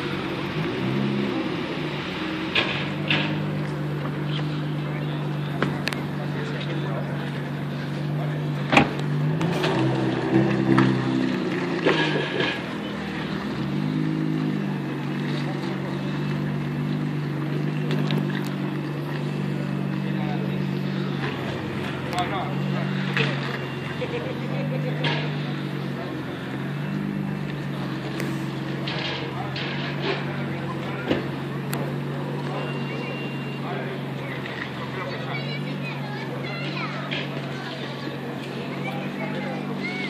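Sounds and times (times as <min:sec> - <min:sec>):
car engine at low revs: 0:00.0 - 0:40.0.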